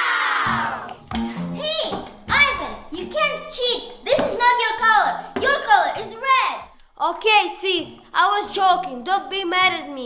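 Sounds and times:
background music: 0.0 - 10.0
children's high-pitched voices: 0.0 - 10.0.

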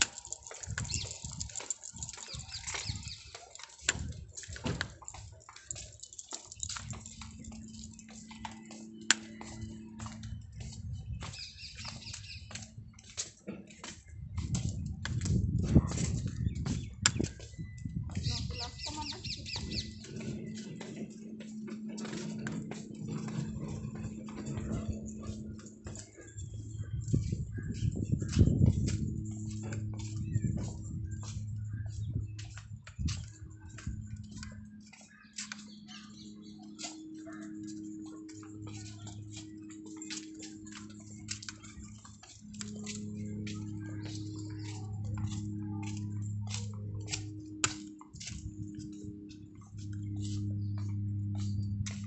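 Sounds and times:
footsteps on brick paving: 0.0 - 52.0
steady low hum: 0.0 - 52.0.

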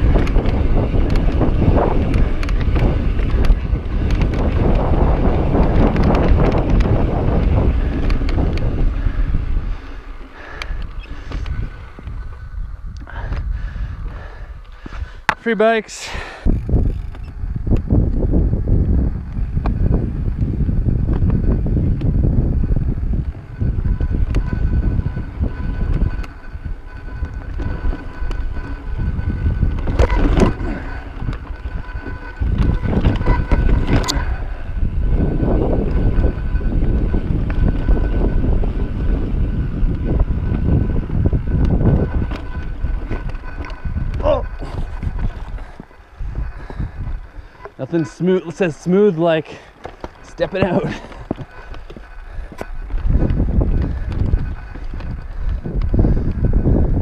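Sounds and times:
bike rattling: 0.0 - 57.0
bike tyre rumble on rock: 0.0 - 57.0
wind rushing over microphone: 0.0 - 57.0.

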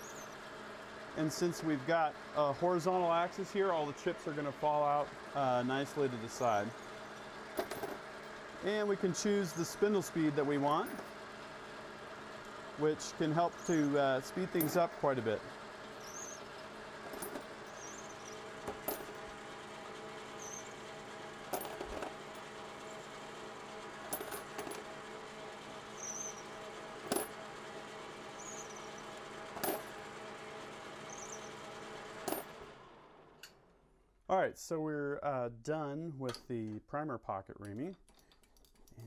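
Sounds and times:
metal lathe running: 0.0 - 32.7.

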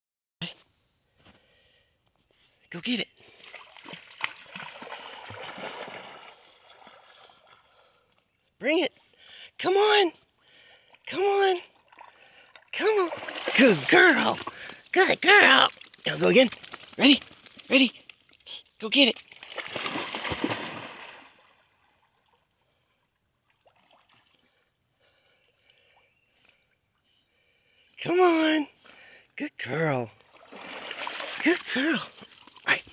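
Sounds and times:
dog splashing and swimming in water: 3.3 - 7.4, 12.8 - 17.9, 19.1 - 21.6, 30.3 - 32.9.

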